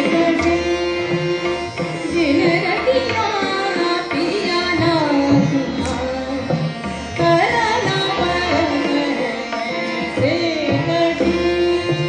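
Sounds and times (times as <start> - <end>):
harmonium: 0.0 - 12.0
low tabla strokes: 0.0 - 12.0
tanpura drone: 0.0 - 12.0.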